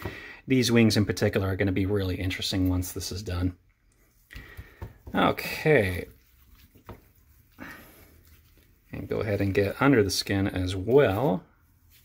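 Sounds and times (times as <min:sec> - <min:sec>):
soft wet squish: 0:03.5 - 0:12.0.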